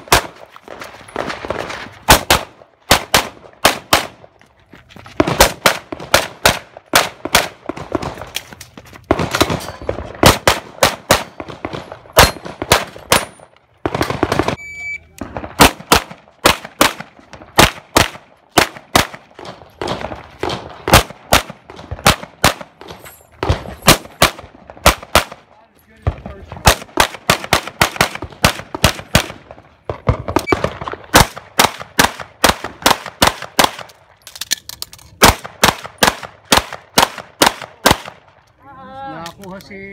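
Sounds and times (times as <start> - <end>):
short high beep: 14.6 - 15.1.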